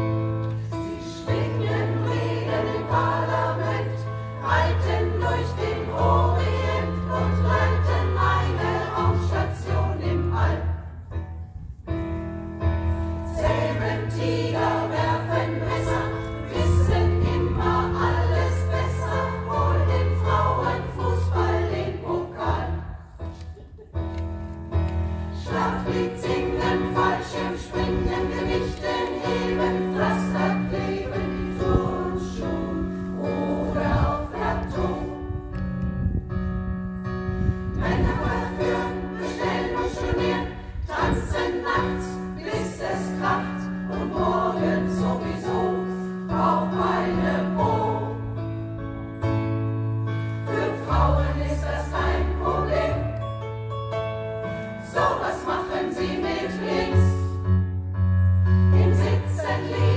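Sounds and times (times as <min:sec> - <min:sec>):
piano accompaniment: 0:00.0 - 0:59.9
women's choir singing: 0:00.6 - 0:11.1, 0:13.2 - 0:23.4, 0:25.3 - 0:35.4, 0:37.7 - 0:48.5, 0:50.3 - 0:53.2, 0:54.5 - 0:57.5, 0:58.6 - 0:59.9.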